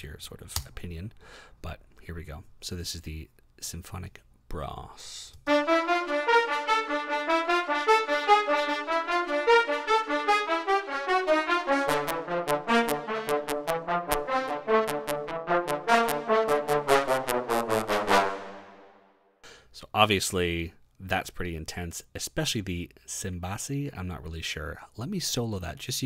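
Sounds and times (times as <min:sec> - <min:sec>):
brass ensemble staccato melody: 0:05.5 - 0:19.1.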